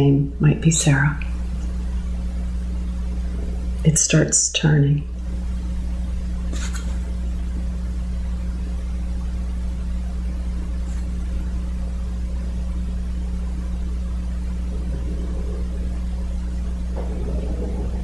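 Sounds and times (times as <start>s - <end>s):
faint constant tones: 0.0s - 18.0s
faint low murmur: 0.0s - 18.0s
low room hum: 0.0s - 18.0s.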